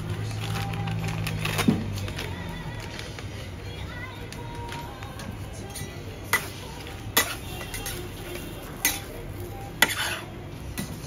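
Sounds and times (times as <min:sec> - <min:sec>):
metal scraper on metal griddle: 0:06.3 - 0:08.1, 0:09.8 - 0:10.3.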